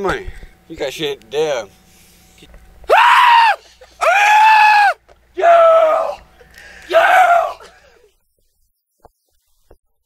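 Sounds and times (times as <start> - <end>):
man screaming: 2.9 - 7.8.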